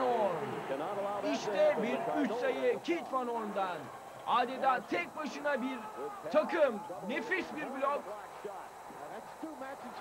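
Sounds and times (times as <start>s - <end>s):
commentary: 0.0s - 10.0s.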